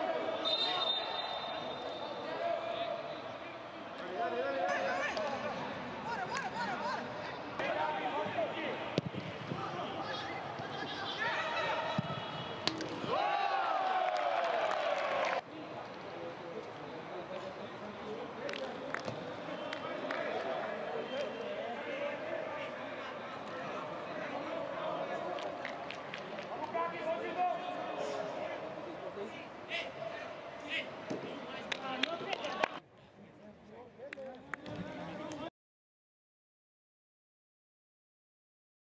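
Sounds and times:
players shouting: 13.0s - 15.4s
long drawn-out shout: 13.1s - 15.4s.

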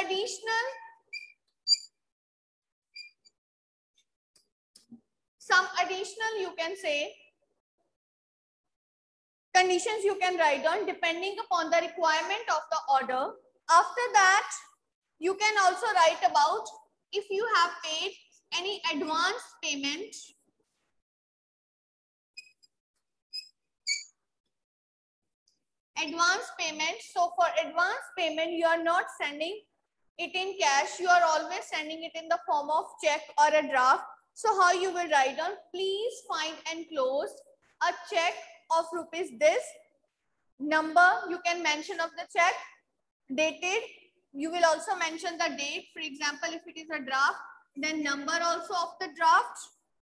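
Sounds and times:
marker squeaking on board: 0.8s - 2.0s, 3.0s - 3.4s, 22.4s - 24.2s.

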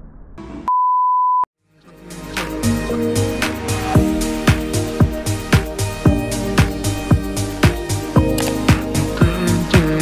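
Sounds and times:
background music: 1.6s - 10.0s.

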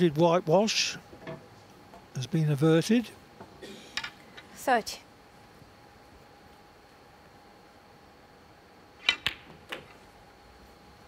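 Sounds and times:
cue tip clicking cue ball: 9.0s - 10.0s
snooker balls clicking together: 9.0s - 10.0s.

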